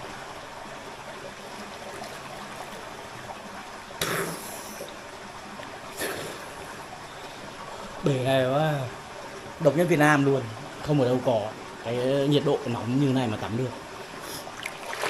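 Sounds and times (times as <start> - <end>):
running and trickling water: 0.0 - 15.0
splashes of wading: 13.8 - 15.0.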